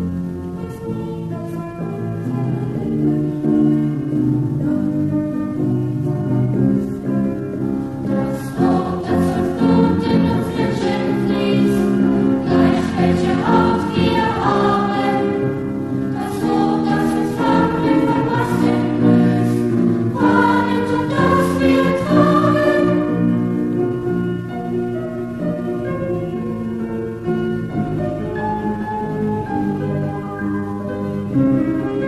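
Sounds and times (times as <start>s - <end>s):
instrumental accompaniment: 0.0s - 32.0s
choir singing in unison: 8.0s - 23.4s.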